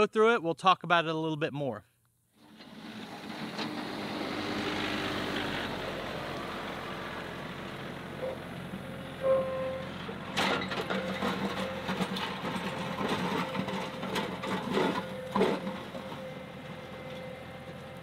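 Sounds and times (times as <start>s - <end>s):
blade scraping and clunking in gravel: 2.4s - 4.2s, 9.2s - 17.4s
tractor diesel engine running: 2.4s - 18.0s.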